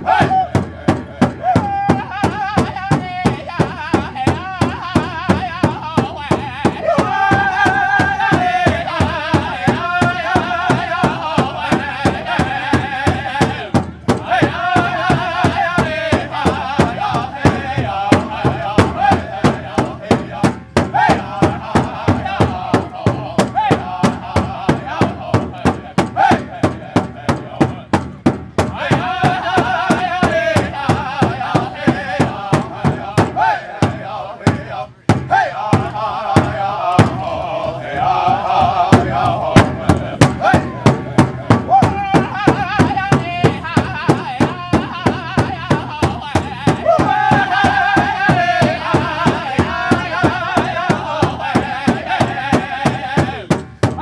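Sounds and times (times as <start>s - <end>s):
large drum steady fast beat: 0.0s - 54.0s
men singing in unison: 0.0s - 54.0s.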